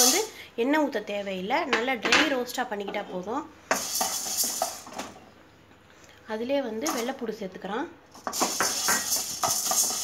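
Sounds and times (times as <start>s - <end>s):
dry lentils rattling in metal pan: 3.7s - 4.9s, 8.2s - 10.0s.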